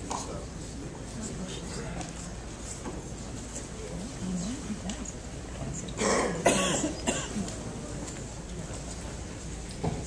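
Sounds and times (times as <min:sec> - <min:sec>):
person coughing: 0:06.0 - 0:07.5.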